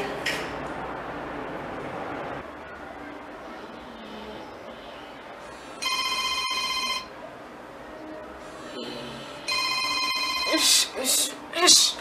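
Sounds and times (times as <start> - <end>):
smartphone ringtone: 5.8 - 7.2, 9.4 - 10.9
woman speaking: 10.5 - 12.0.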